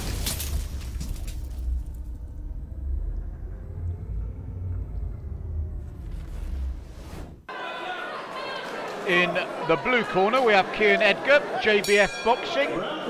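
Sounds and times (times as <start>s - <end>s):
deep rumble: 0.0s - 7.5s
noisy whoosh: 1.7s - 7.5s.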